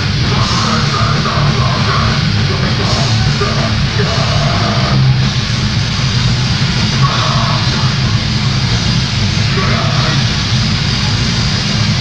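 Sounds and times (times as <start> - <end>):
fast drumming: 0.0 - 12.0
grindcore band playing live: 0.0 - 12.0.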